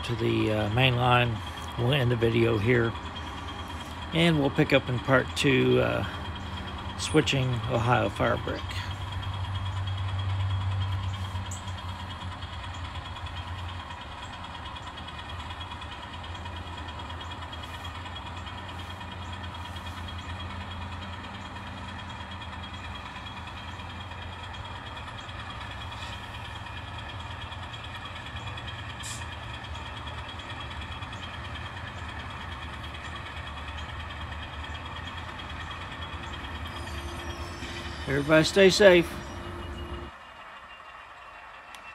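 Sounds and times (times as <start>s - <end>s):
model locomotive running on track: 0.0s - 41.9s.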